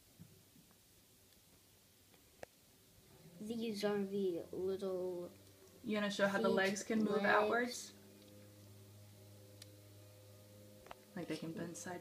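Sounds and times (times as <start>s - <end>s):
steady low hum: 1.8s - 12.0s.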